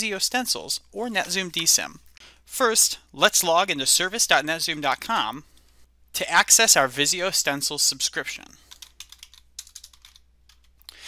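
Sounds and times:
computer keyboard typing: 8.6 - 10.9.

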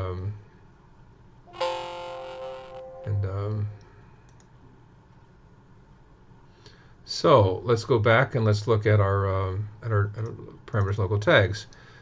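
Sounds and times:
computer alert chime: 1.5 - 3.8.

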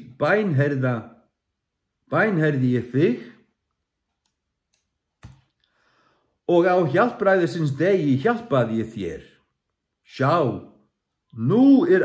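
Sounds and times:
man breathing in: 5.6 - 6.4.

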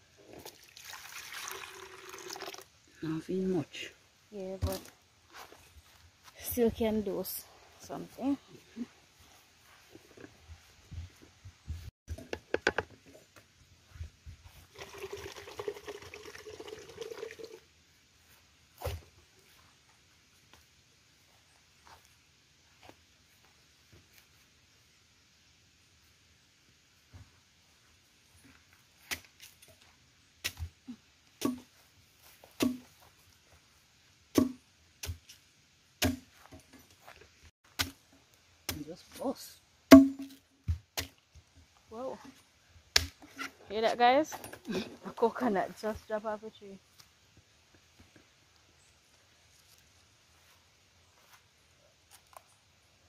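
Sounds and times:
water pouring into plastic jug: 0.3 - 2.8, 14.7 - 17.6
machete chopping coconut husk: 32.6 - 32.8, 34.3 - 35.3, 36.0 - 36.3, 37.7 - 38.0, 38.7 - 39.0, 39.9 - 41.2, 42.9 - 43.2.

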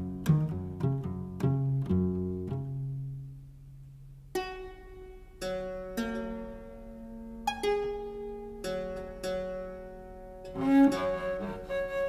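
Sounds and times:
bowed viola da gamba: 10.4 - 12.0.

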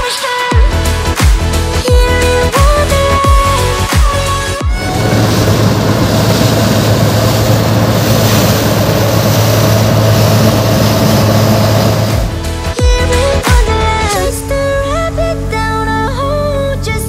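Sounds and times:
music: 0.0 - 17.0
combine harvester engine drone: 4.6 - 12.8.

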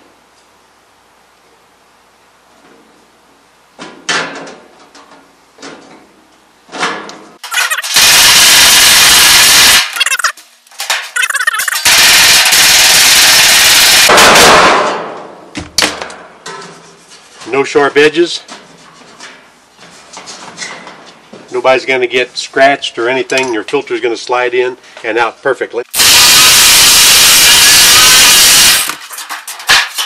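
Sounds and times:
power driver driving screws: 25.9 - 29.0.

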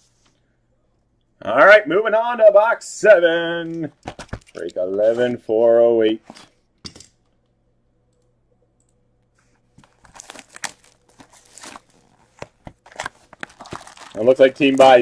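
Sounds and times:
plastic wrap crinkling and tearing: 9.8 - 15.0.

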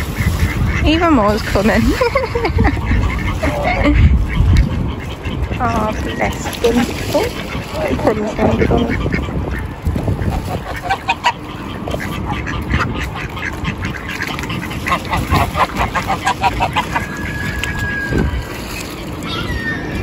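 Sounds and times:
ducks quacking: 0.0 - 20.0.

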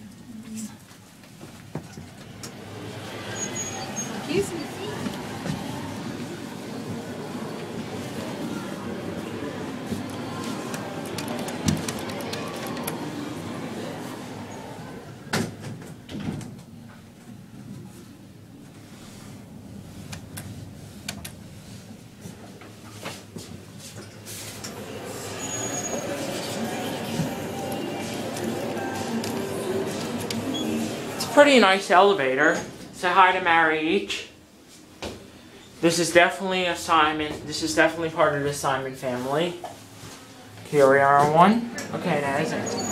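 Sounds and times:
elevator mechanical hum: 1.1 - 42.9.

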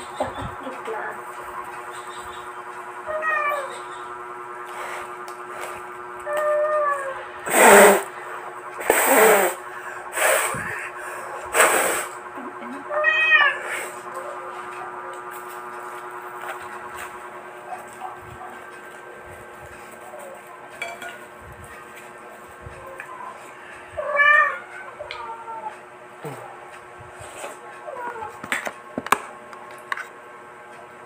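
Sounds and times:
faint steady hum: 0.0 - 31.0
cat meowing: 3.1 - 3.9, 6.2 - 7.2, 12.9 - 13.7, 24.0 - 25.8
loud short noisy bursts: 7.4 - 10.7, 11.5 - 12.2.

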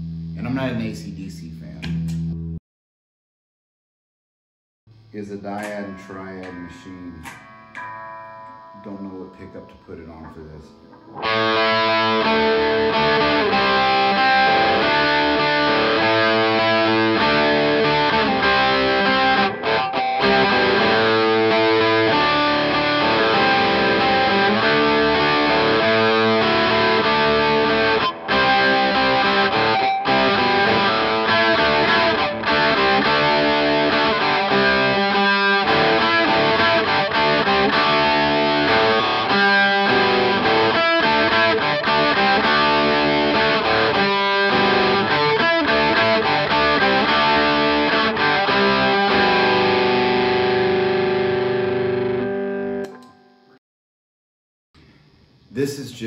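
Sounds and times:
distorted electric guitar chords: 4.9 - 53.2.

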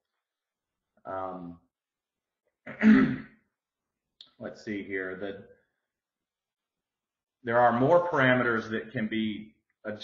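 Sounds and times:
man clearing his throat: 2.7 - 3.4.

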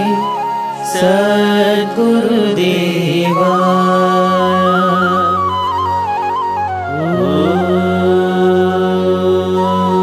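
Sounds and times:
steady drone: 3.7 - 10.0
voice chanting: 6.8 - 10.0.

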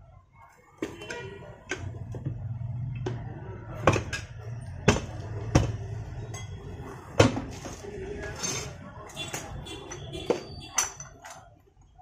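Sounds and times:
metallic clink of wheel rim: 9.3 - 11.5.

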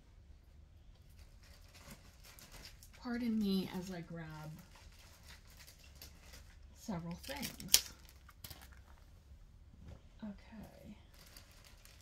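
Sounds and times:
faint rustling: 0.5 - 12.0.

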